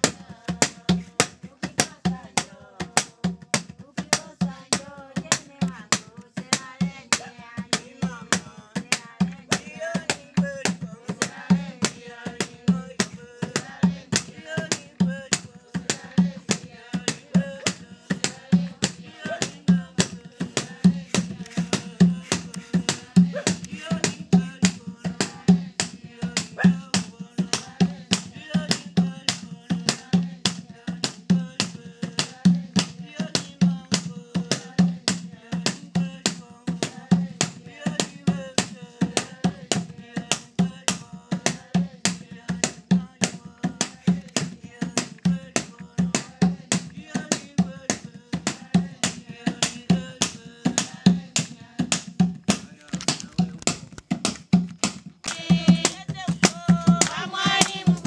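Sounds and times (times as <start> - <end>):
hand drum beating fast rhythm: 0.0 - 58.0.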